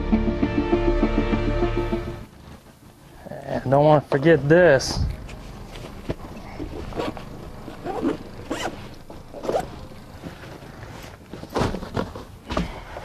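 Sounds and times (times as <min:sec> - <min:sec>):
zipper pulled: 0:05.2 - 0:11.2.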